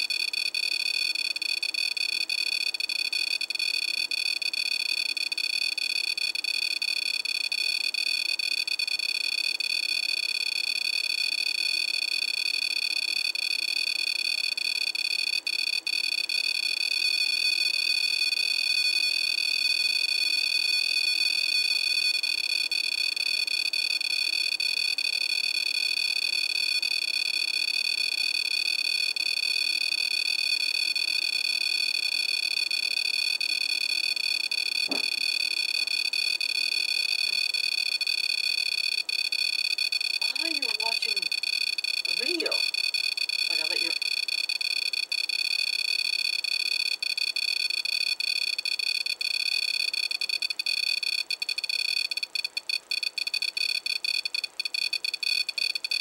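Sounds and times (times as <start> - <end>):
high-pitched buzzer alarm tone: 0.0 - 56.0.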